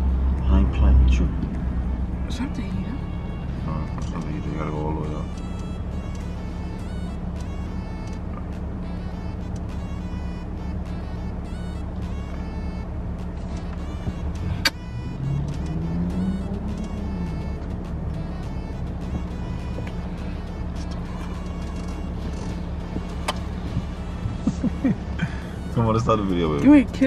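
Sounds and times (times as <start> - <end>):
car engine hum inside cabin: 0.0 - 27.0
music playing: 0.0 - 27.0
low rising and falling sound: 11.2 - 25.8.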